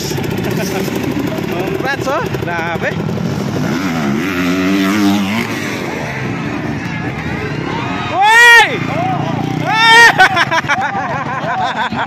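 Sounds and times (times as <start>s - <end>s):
dirt bike engine revving: 0.0s - 12.0s.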